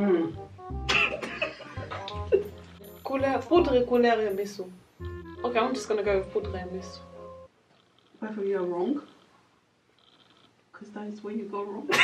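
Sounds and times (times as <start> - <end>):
background music: 0.0 - 7.6.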